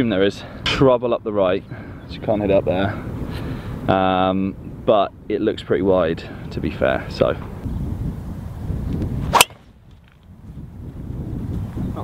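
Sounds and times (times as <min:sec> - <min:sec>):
wind rumble on microphone: 0:00.0 - 0:12.0
golf ball struck by driver: 0:09.3 - 0:09.7.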